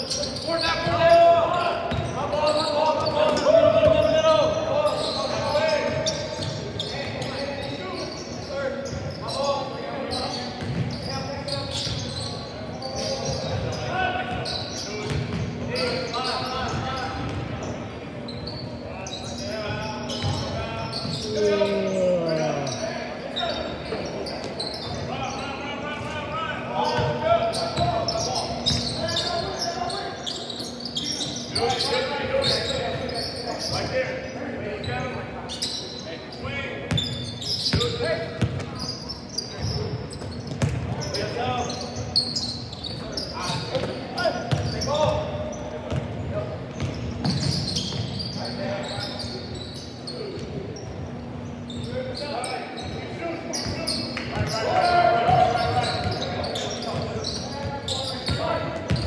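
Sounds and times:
people calling out: 21.2 - 22.8.

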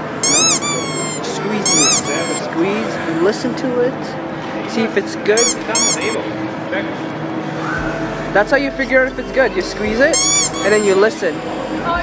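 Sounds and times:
supermarket din and hum: 0.0 - 2.5
faint indistinct voices: 0.0 - 12.0
high squealing voice: 0.2 - 2.5, 5.4 - 6.2, 10.1 - 11.0.

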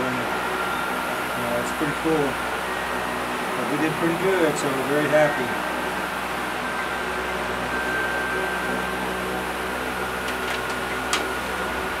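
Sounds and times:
steady mechanical hum: 0.0 - 12.0
thin high whine: 0.0 - 12.0.

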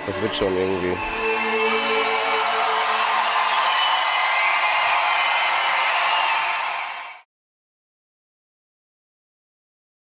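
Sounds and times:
studio audience cheering and applauding: 0.0 - 7.3.

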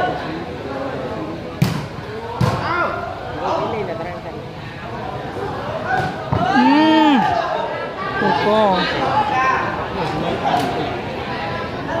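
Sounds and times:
crowd shouting: 5.4 - 9.9.

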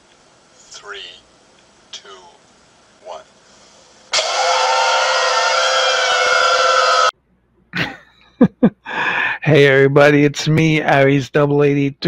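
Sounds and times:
harsh burst of tonal noise: 3.5 - 7.1.

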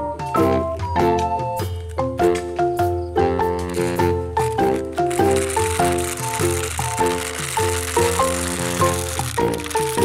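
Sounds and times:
toy helicopter rotor rattling: 3.6 - 10.0.

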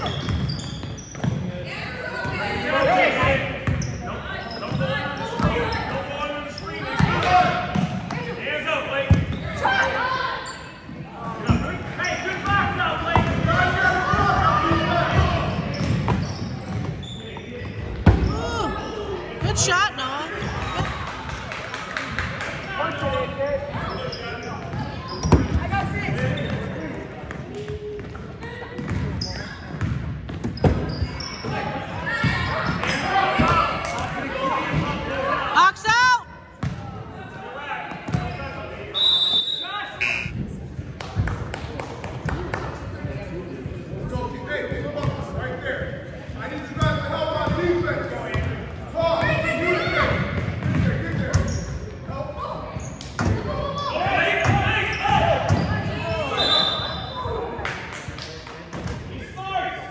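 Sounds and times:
short high whistle blast: 39.0 - 40.4
people calling out: 39.4 - 40.4.

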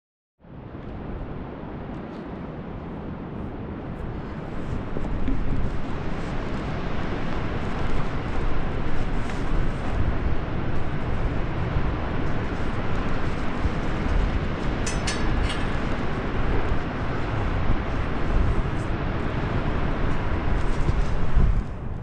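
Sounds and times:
wind buffeting microphone: 0.5 - 22.0
metallic clinking of climbing hardware: 14.8 - 16.0.

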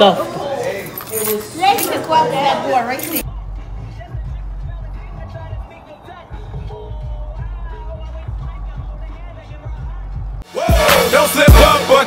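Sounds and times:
restaurant chatter: 0.0 - 3.3.

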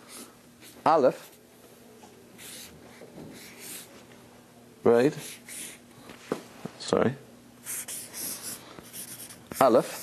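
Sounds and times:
marker scratching on paper: 2.4 - 3.9, 5.2 - 5.8, 7.6 - 10.0.

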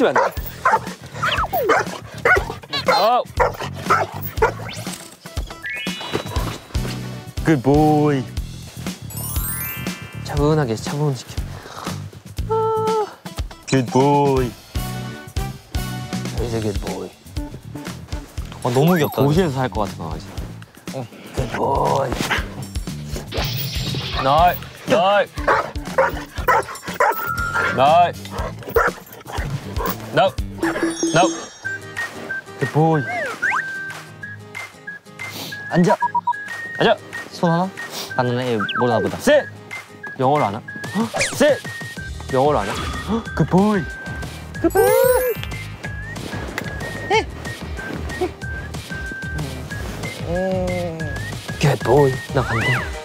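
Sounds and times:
dog yelping and whining: 0.2 - 4.9, 25.4 - 32.4, 44.7 - 45.4.

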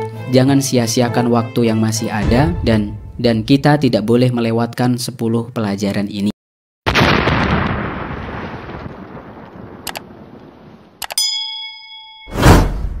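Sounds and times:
loud explosion boom: 2.2 - 3.9, 6.9 - 10.3
bright chime ringing: 11.1 - 12.5
loud whoosh: 12.3 - 13.0.

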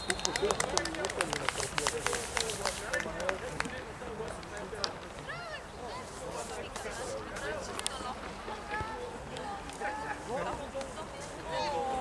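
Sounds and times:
people clapping: 0.0 - 5.0.

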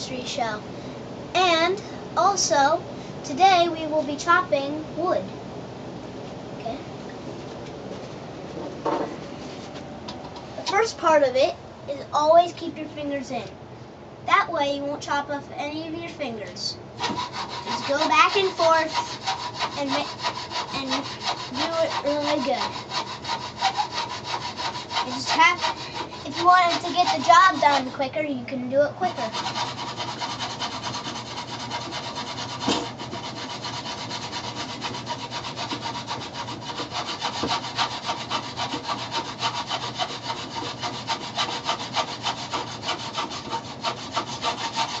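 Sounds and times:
saw cutting wood: 17.0 - 28.0, 29.0 - 45.0.

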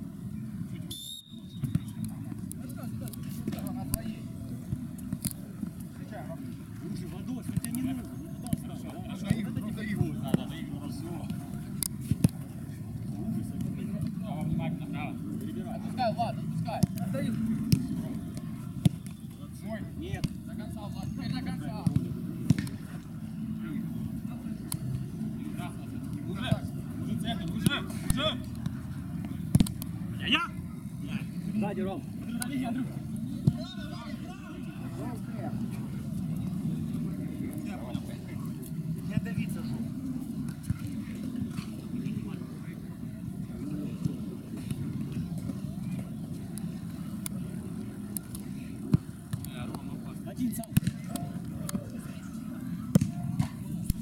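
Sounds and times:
ball being kicked: 29.5 - 30.0, 50.7 - 51.3.

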